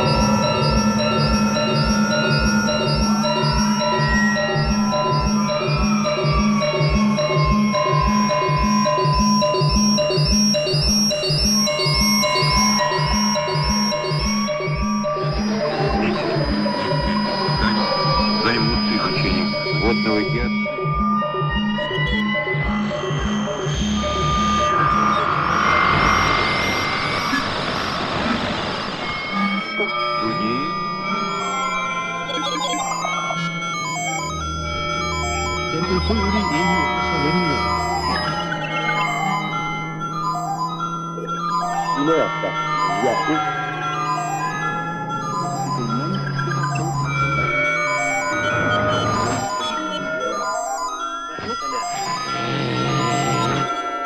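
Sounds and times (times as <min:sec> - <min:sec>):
chirping high tones: 0:00.0 - 0:27.8, 0:29.2 - 0:54.0
slow low throb: 0:00.0 - 0:31.4
electronic music from radio sounds: 0:00.0 - 0:54.0
regular pulse beat: 0:00.0 - 0:54.0.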